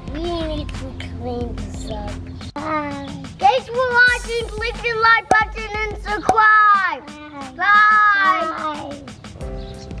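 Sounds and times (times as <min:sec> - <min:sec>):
child calling bye: 0:02.6 - 0:09.1.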